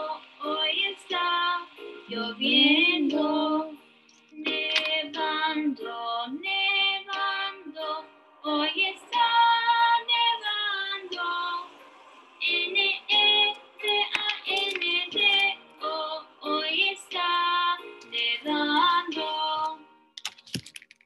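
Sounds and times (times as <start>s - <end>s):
woman singing children's song: 0.0s - 3.8s, 4.4s - 11.8s, 12.4s - 19.9s.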